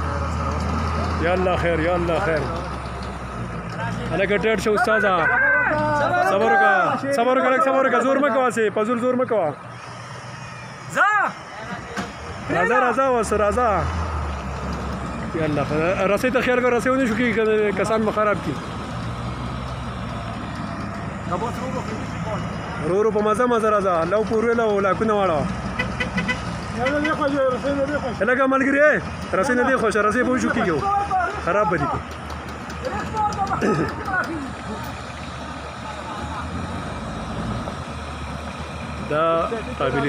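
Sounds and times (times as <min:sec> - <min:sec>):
vehicle engine idling low: 0:09.6 - 0:40.0.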